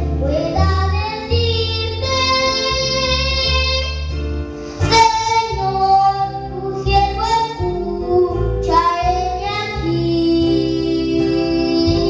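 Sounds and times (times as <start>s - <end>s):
instrumental accompaniment: 0.0s - 12.0s
boy singing into a microphone: 0.2s - 4.2s, 4.8s - 12.0s.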